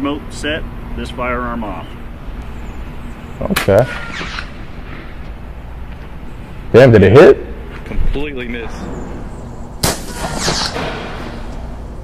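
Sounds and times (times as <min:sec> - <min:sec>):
low background rumble and hiss: 0:00.0 - 0:12.0.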